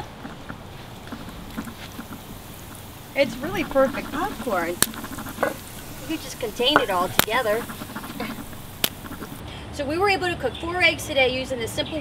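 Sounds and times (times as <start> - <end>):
faint crackles: 0.0 - 9.4
hot oil sizzling: 0.0 - 9.4.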